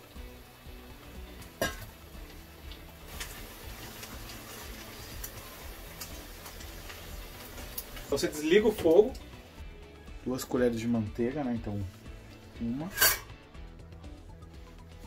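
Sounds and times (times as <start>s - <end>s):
faint background music: 0.0s - 15.0s.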